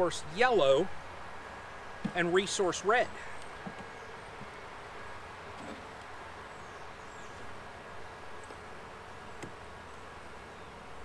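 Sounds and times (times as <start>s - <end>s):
honeybees buzzing: 0.3s - 11.0s.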